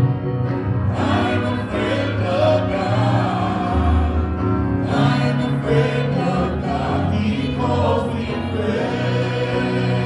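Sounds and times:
group singing worship song: 0.9 - 10.0.

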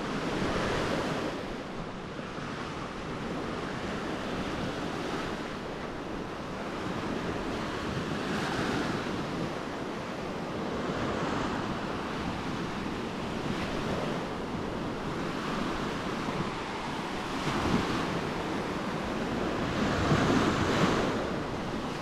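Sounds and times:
small waves washing up a beach: 0.0 - 22.0.

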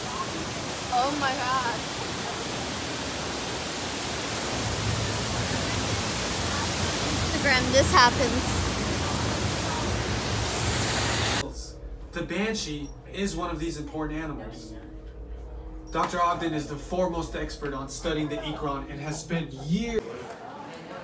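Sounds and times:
steady rushing noise: 0.0 - 11.9.

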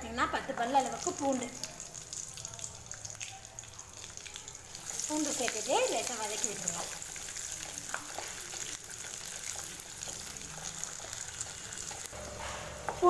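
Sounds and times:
spices sizzling in hot oil: 0.0 - 13.0.

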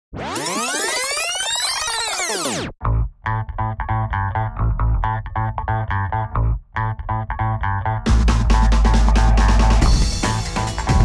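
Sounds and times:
synthesized rising sweep: 0.1 - 2.8.

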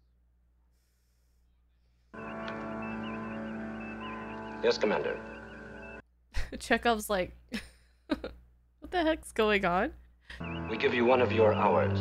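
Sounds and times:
electronic drone: 2.2 - 6.0.

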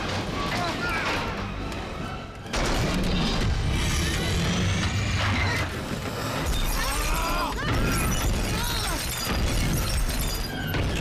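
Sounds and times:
crashing and crunching metal: 2.4 - 11.0
glass shattering: 6.4 - 11.0.

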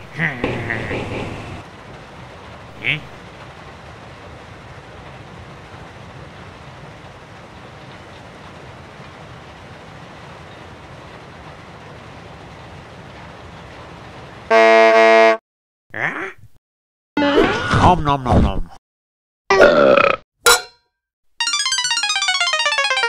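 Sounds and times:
loud horn-like blast: 14.5 - 15.4.

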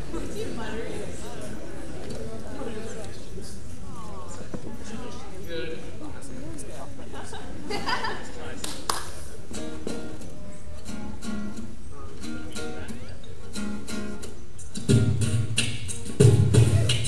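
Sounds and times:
acoustic guitar strummed and picked: 9.5 - 17.0.

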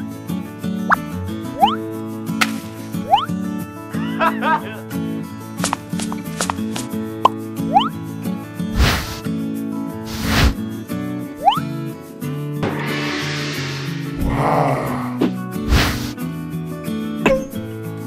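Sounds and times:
background music with sustained notes: 0.0 - 18.0
whooshes: 8.8 - 9.2, 10.1 - 10.6, 12.6 - 16.2
rising whistle-like glides: 12.6 - 14.7.

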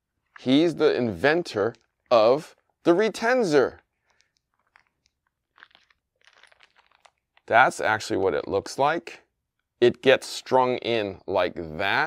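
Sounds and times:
plastic bag crinkling: 1.1 - 8.2.

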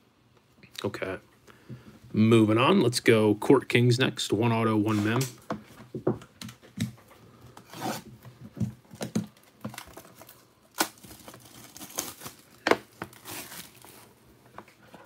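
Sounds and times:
plastic wrap tearing and crinkling: 9.0 - 14.2.

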